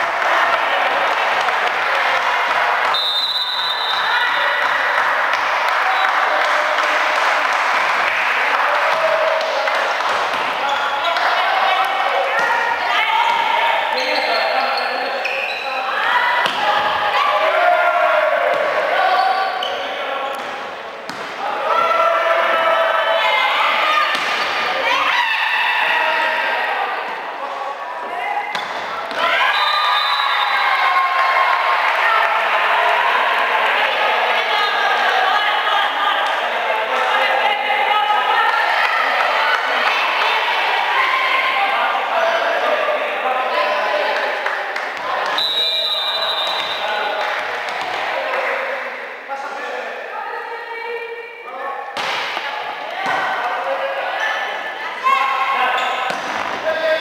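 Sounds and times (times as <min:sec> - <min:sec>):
crowd noise: 0:00.0 - 0:57.0
people calling and shouting: 0:00.0 - 0:57.0.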